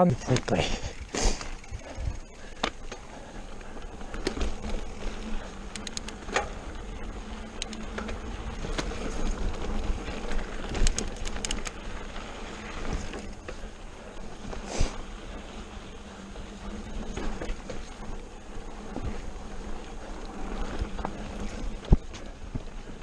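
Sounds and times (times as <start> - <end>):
bike rattling clicks: 0.2 - 15.0
wind noise on microphone: 0.8 - 2.3.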